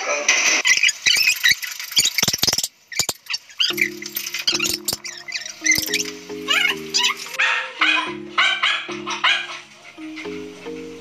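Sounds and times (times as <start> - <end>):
background music: 3.7 - 11.0
dog yapping: 4.5 - 9.6.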